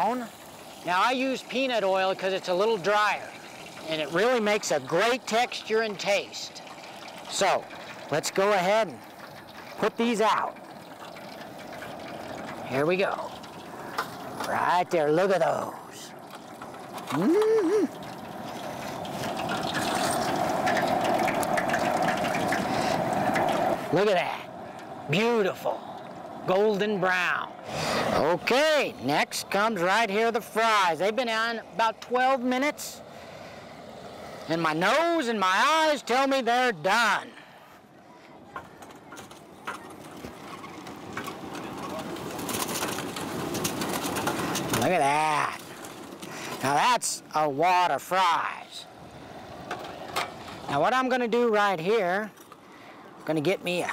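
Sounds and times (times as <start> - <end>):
oil sizzling in deep fryer: 0.0 - 23.9.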